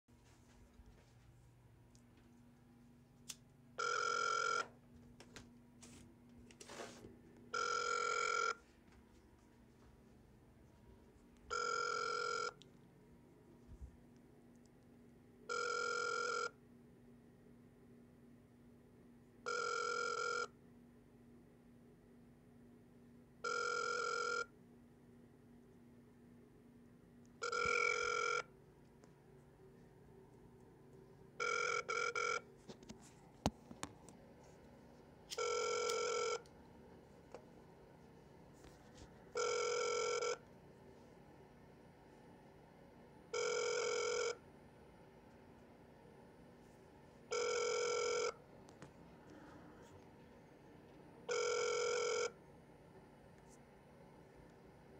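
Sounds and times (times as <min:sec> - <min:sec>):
phone ringback tone: 0:03.8 - 0:04.8, 0:07.5 - 0:08.6, 0:11.5 - 0:12.6, 0:15.5 - 0:16.6, 0:19.4 - 0:20.6, 0:23.4 - 0:24.5, 0:27.4 - 0:28.5, 0:31.4 - 0:32.5, 0:35.3 - 0:36.5, 0:39.3 - 0:40.4, 0:43.3 - 0:44.4, 0:47.3 - 0:48.4, 0:51.2 - 0:52.4.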